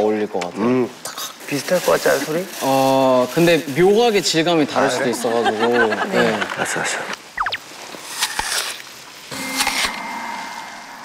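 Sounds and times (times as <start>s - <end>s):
falling whistle-like tones: 7.4s - 7.6s.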